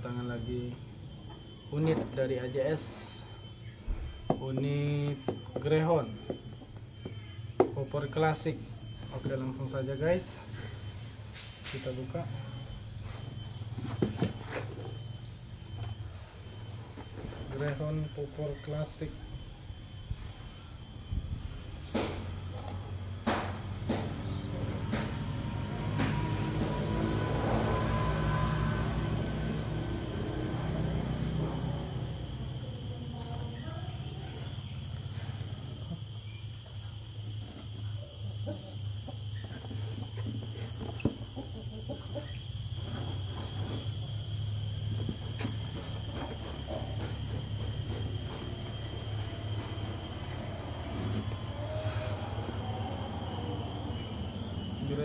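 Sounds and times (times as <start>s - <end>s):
steady low hum: 0.0s - 55.0s.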